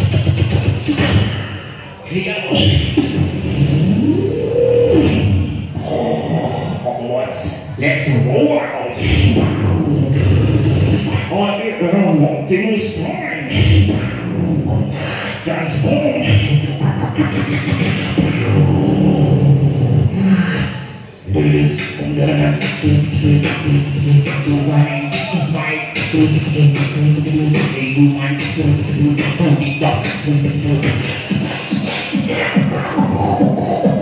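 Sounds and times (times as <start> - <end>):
beatboxer growling vocal sounds: 0.0 - 34.0
rough noisy vocal sounds: 0.0 - 34.0
mouth-made percussion: 21.4 - 34.0.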